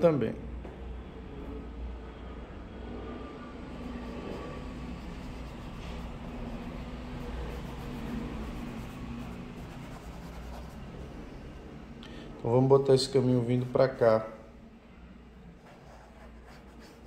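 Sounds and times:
faint hum: 0.0 - 17.0
steady low rumble: 0.5 - 13.8.

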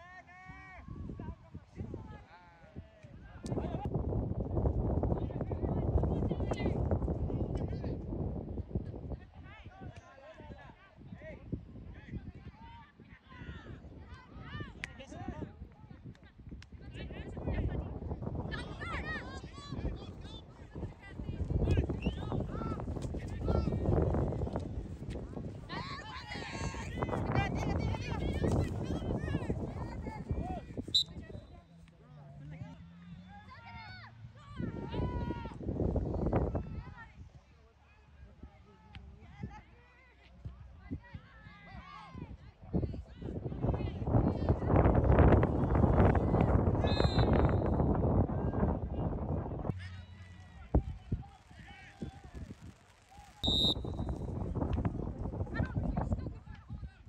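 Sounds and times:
sideline crowd noise: 12.4 - 57.0
referee's whistle: 30.9 - 31.6, 46.8 - 47.9, 53.4 - 54.3.

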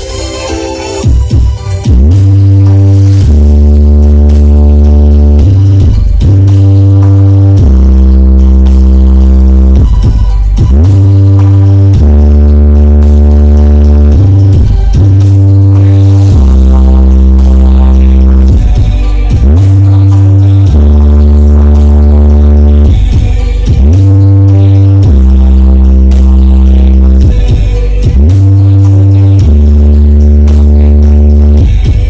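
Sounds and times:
loud bass music from speaker system: 0.0 - 32.0.

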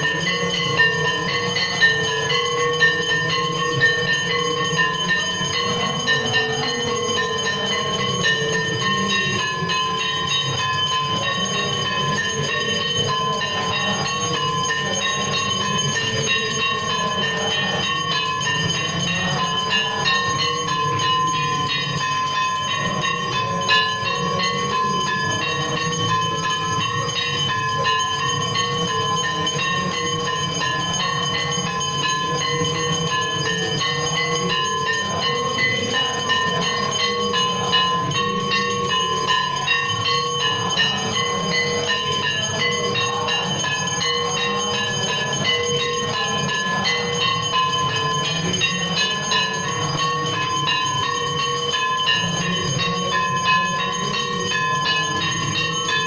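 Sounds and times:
temple bells ringing: 0.0 - 56.0.

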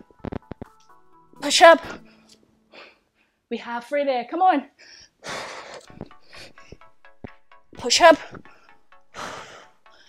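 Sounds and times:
background music with a beat: 0.0 - 2.4, 5.8 - 10.0.

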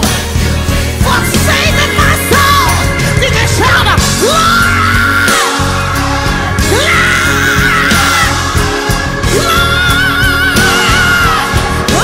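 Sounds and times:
band playing gospel music: 0.0 - 12.0.

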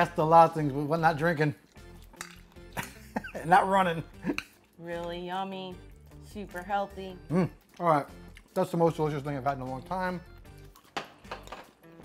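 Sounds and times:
metal utensil clinking ceramic bowl: 2.1 - 2.5.

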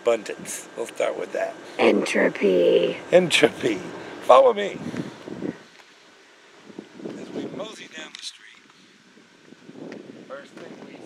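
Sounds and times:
wind noise on microphone: 4.6 - 5.7, 6.6 - 8.1, 9.1 - 11.0.

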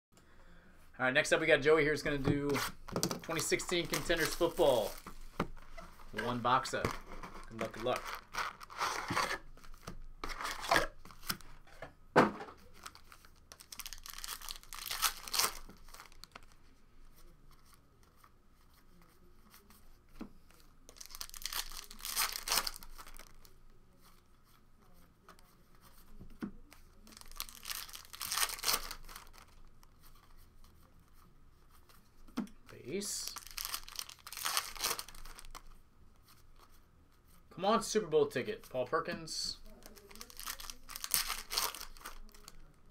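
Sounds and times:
foil packs tearing and crinkling: 7.4 - 9.3, 12.7 - 16.3, 21.0 - 23.3, 27.1 - 29.5, 33.2 - 35.6, 39.8 - 42.6.

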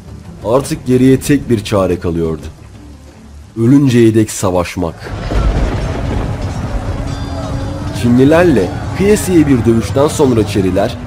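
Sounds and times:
background music: 0.0 - 11.0
deep rumbling boom: 5.1 - 10.2.

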